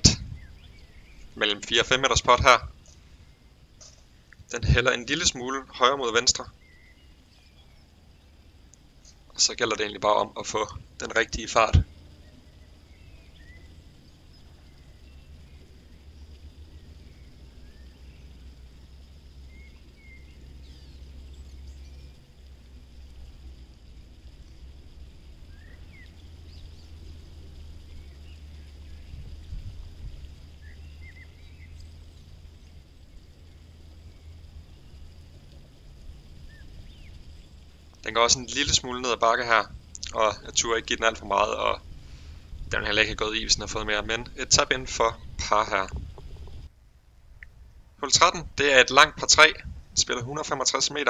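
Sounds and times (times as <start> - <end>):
wind rumble on microphone: 0.0 - 50.9
short bird chirps: 6.5 - 8.0.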